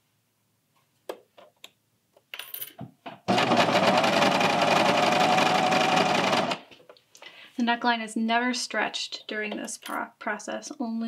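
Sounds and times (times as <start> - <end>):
serger stitching: 3.3 - 6.7.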